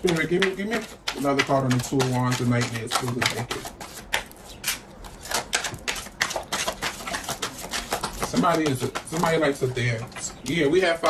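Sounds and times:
cards being shuffled: 0.0s - 9.4s.

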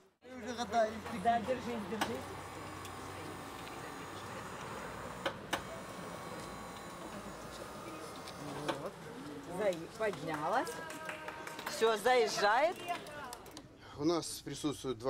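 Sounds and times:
wheelchair lift motor humming: 0.5s - 10.7s.

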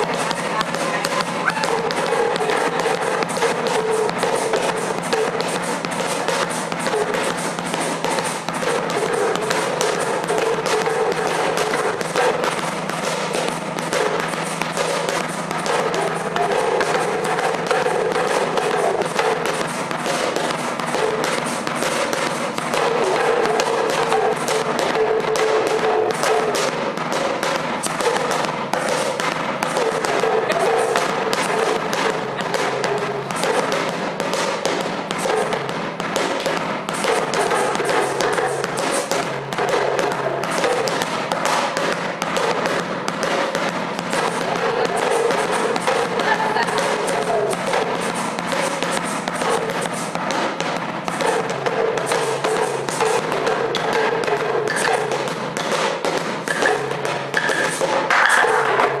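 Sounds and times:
drum struck with stick: 0.0s - 59.0s
hand shakers: 0.0s - 59.0s.

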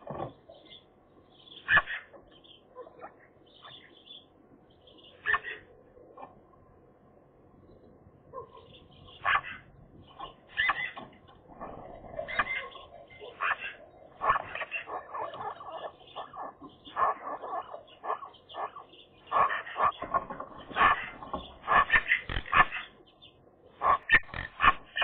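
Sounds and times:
magpies calling: 0.0s - 6.6s, 8.3s - 25.0s.

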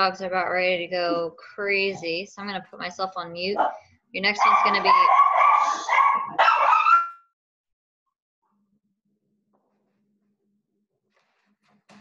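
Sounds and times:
dogs whining and yipping: 4.5s - 7.2s.

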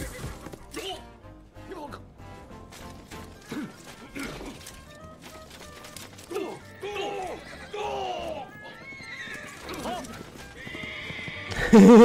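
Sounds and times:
background music: 0.0s - 12.0s
voices shouting: 6.2s - 11.4s
horse neighing: 6.7s - 12.0s.

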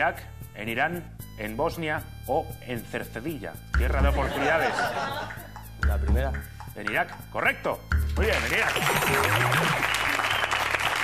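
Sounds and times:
music playing: 0.0s - 11.0s
audience applauding: 8.2s - 11.0s.

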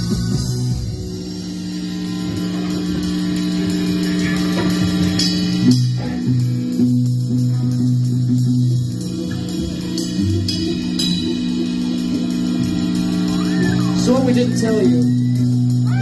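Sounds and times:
electric guitars sustained notes: 0.0s - 16.0s.

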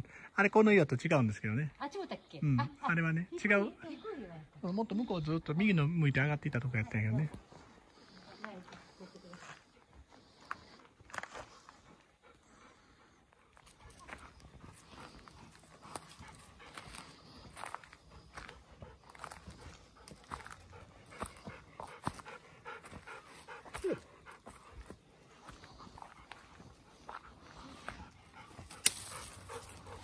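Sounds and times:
dogs panting: 3.3s - 30.0s
footsteps on dry leaves: 14.0s - 23.5s.

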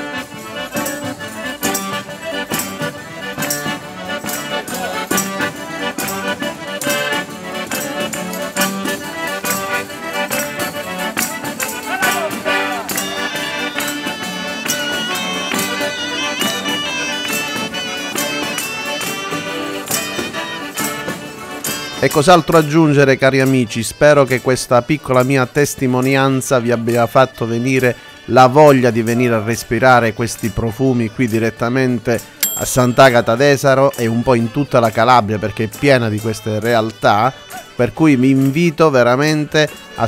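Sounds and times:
tambourines: 0.0s - 22.1s
button accordions playing folk dance: 0.0s - 40.0s
hand claps: 1.6s - 21.9s.

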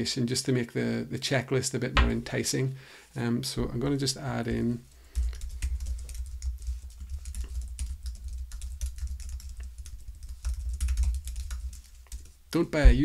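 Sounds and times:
typing on computer keyboard: 5.2s - 12.4s.

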